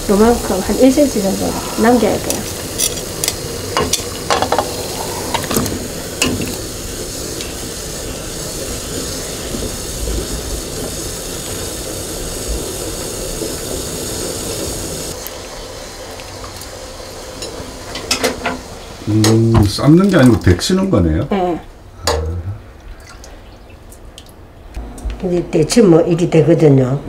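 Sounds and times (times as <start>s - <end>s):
water boiling and bubbling: 0.0s - 24.8s
metal tongs clinking: 2.2s - 4.5s.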